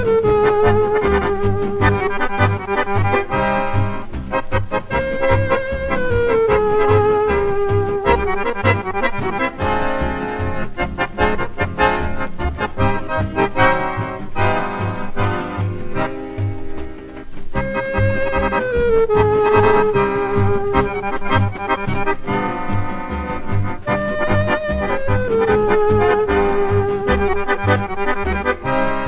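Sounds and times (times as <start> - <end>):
accordion melody: 0.0 - 29.0
dance band bass beat: 0.1 - 29.0.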